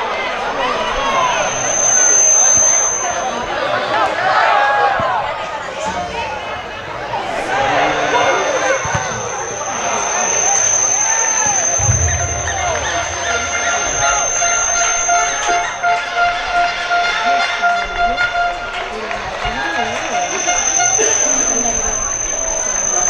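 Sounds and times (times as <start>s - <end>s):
high-pitched whine: 0.6s - 3.8s, 7.4s - 18.8s, 19.6s - 23.0s
held tone: 1.0s - 3.6s, 7.5s - 17.0s, 19.8s - 23.0s.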